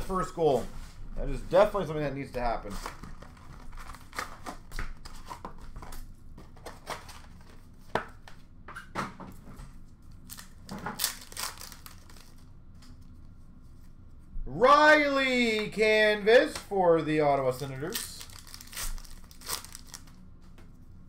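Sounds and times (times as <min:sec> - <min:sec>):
wrappers rustling and crinkling: 0:10.2 - 0:13.2, 0:17.6 - 0:20.3.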